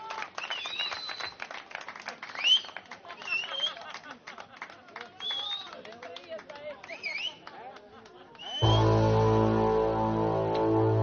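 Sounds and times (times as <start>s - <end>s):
audience clapping: 0.0s - 9.0s.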